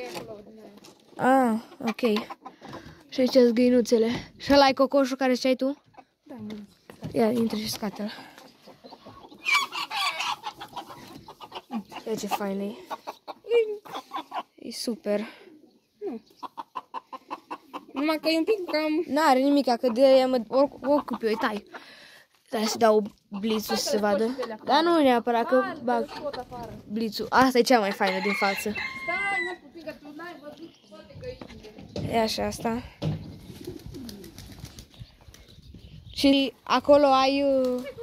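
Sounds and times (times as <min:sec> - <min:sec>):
chicken clucking: 0:00.1 - 0:03.5, 0:05.7 - 0:14.6, 0:15.4 - 0:21.9, 0:22.6 - 0:26.9
pigeons cooing: 0:33.2 - 0:35.3.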